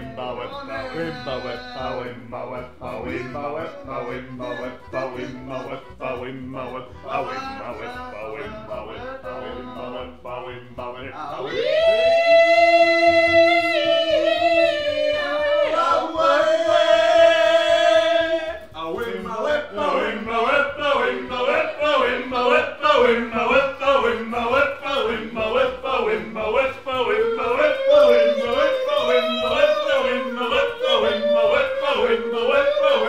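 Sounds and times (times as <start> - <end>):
man yodeling: 0.0 - 33.0.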